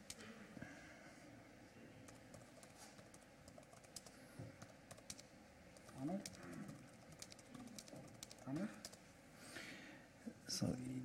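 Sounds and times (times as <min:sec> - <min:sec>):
laptop keyboard typing: 0:02.0 - 0:09.1.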